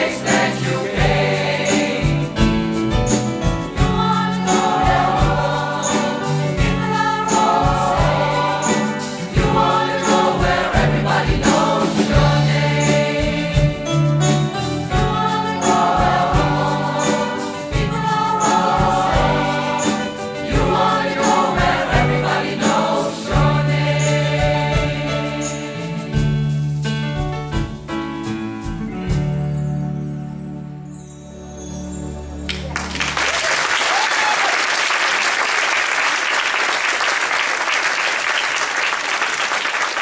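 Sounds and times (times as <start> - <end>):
mixed choir singing: 0.0 - 2.8, 3.7 - 26.5
live band with steady beat: 0.0 - 30.1.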